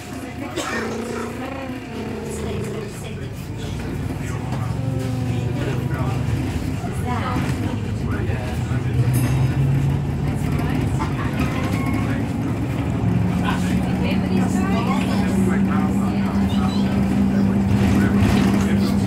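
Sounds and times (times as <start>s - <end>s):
road noise: 0.0s - 18.3s
bus engine hum: 0.0s - 19.0s.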